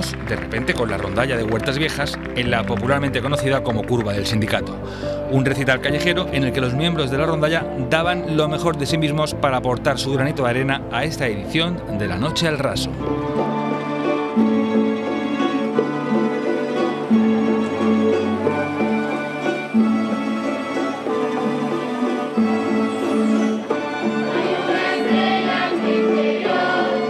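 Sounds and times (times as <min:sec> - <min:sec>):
string ensemble playing: 0:00.0 - 0:27.0.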